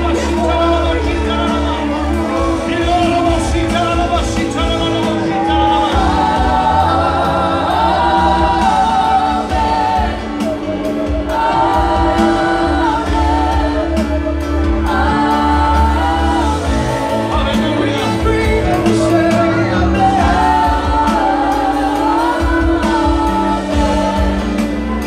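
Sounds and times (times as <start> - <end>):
group singing gospel song: 0.0 - 25.0
instrumental backing with bass: 0.0 - 25.0.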